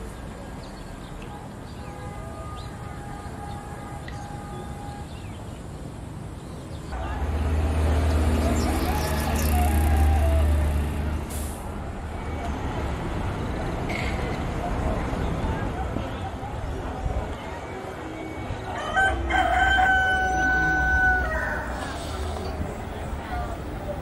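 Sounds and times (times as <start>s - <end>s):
outdoor background noise: 0.0s - 24.0s
vehicle engine rumble passing: 7.0s - 15.3s.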